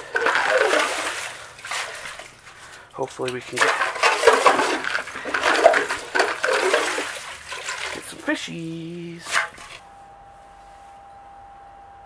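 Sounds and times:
water and slush splashing: 0.0s - 9.8s.

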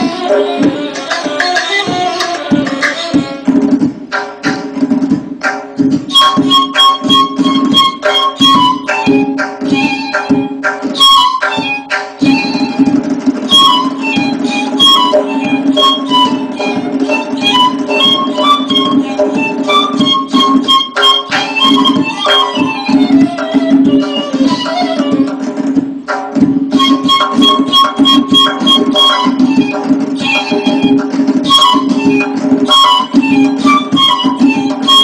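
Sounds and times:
reed flute melody: 6.1s - 25.4s, 26.7s - 35.0s.

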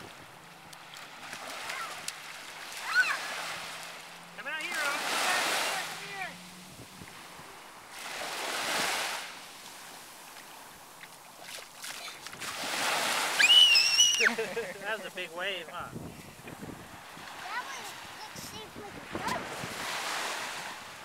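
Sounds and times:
ocean waves breaking on sand: 0.0s - 21.0s
voice: 14.2s - 15.9s.

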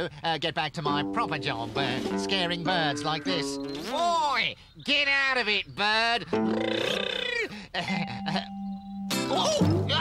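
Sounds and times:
cartoon character laughing: 6.2s - 8.7s.

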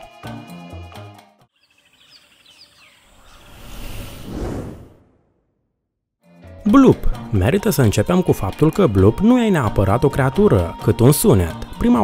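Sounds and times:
background music: 0.0s - 1.5s, 6.2s - 12.0s
short bird chirps: 1.6s - 4.2s
whoosh: 3.1s - 5.8s.

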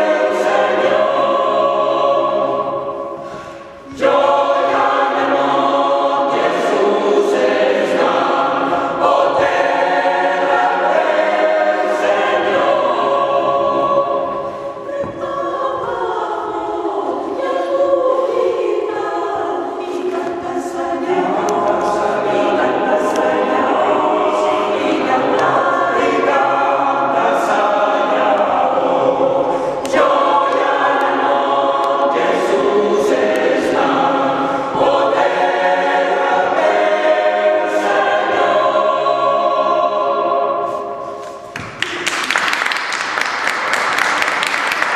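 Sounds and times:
mixed choir singing unaccompanied: 0.0s - 41.5s.

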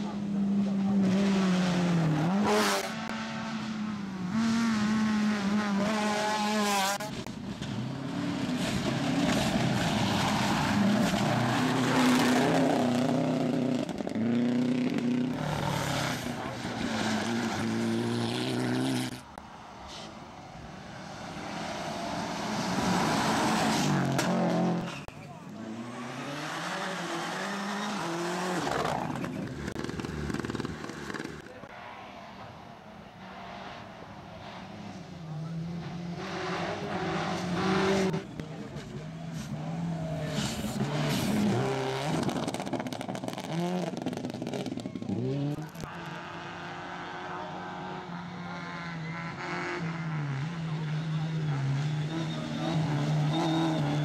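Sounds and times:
rally car engines revving: 0.0s - 31.7s, 33.2s - 54.0s
cars passing by: 0.0s - 54.0s.

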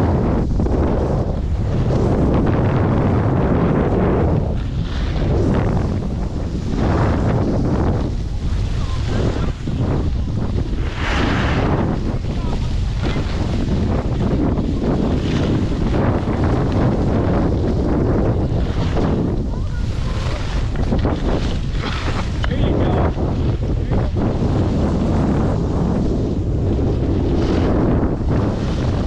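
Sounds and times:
wind buffeting microphone: 0.0s - 29.0s
ski edges scraping snow: 3.7s - 23.2s.

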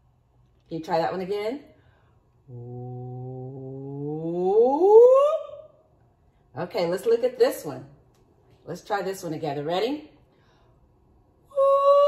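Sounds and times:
woman singing rising ooh: 2.5s - 5.8s, 11.4s - 12.0s.

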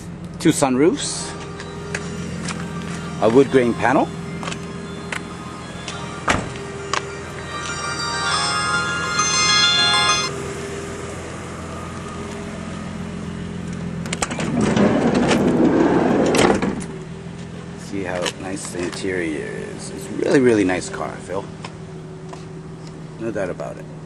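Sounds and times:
high steady tones: 3.1s - 10.6s
sliding door rolling: 14.5s - 16.7s.

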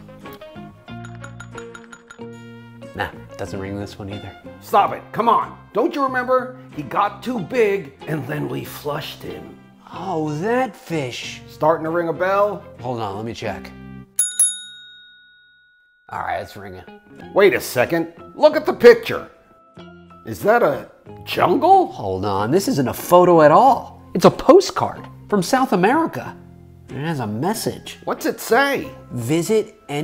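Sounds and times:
background music with held notes: 0.0s - 14.2s, 16.1s - 30.0s
small bell clinking: 1.0s - 2.5s, 14.2s - 16.1s.

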